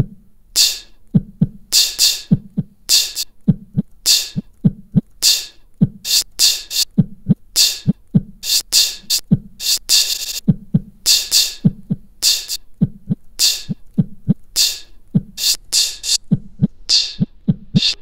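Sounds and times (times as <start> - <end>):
looped beatbox percussion: 0.0 - 18.0.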